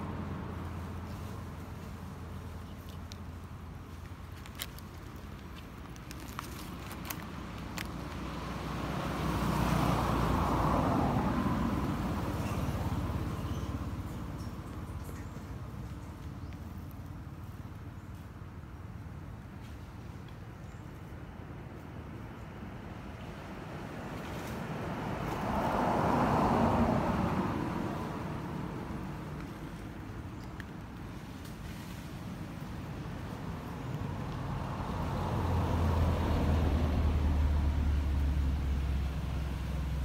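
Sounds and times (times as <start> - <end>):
vehicle passing by: 6.3 - 16.5, 22.8 - 40.0.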